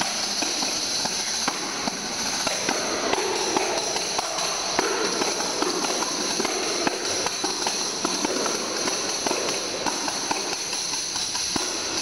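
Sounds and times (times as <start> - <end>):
tambourine jingles shaking: 0.0 - 12.0
taps on tambourine heads: 0.0 - 12.0.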